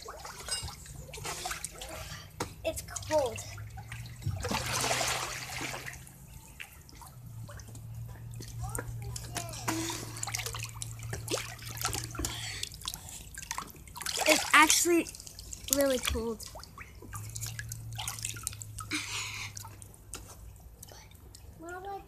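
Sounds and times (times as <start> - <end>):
pool water splashing: 0.0 - 22.0.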